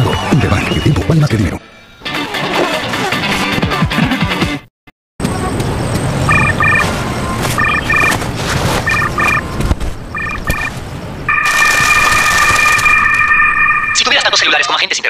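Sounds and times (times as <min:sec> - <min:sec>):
phone double electronic beep: 0:06.3 - 0:08.2, 0:08.8 - 0:09.4, 0:10.1 - 0:10.7
long unbroken phone tone: 0:06.3 - 0:14.4.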